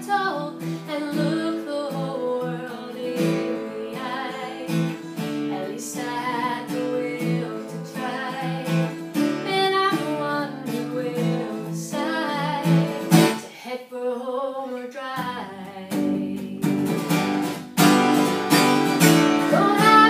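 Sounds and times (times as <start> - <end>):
strummed acoustic guitar: 0.0 - 13.5, 15.2 - 20.0
woman singing: 0.0 - 17.2, 19.2 - 20.0.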